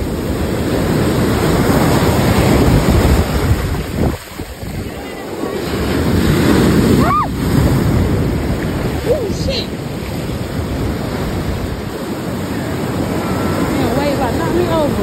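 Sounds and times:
ocean surf breaking: 0:00.0 - 0:15.0
wind noise on microphone: 0:00.0 - 0:15.0.

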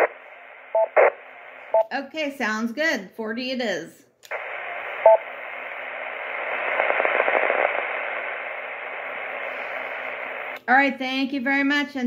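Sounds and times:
radio static hiss: 0:00.0 - 0:01.8, 0:04.3 - 0:10.7.

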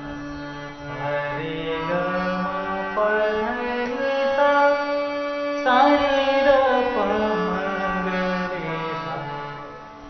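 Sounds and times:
harmonium sustained reed notes: 0:00.0 - 0:10.0.

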